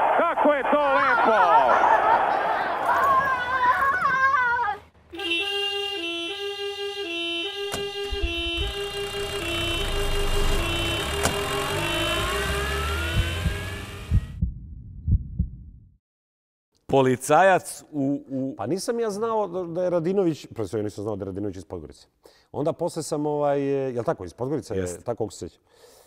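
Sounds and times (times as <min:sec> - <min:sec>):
people shouting excitedly: 0:00.0 - 0:04.8
police car two-tone siren: 0:05.2 - 0:14.4
car engine accelerating: 0:07.8 - 0:14.4.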